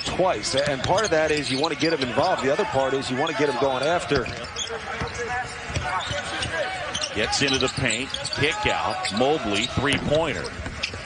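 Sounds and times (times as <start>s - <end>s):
faint voices in arena: 0.0s - 11.0s.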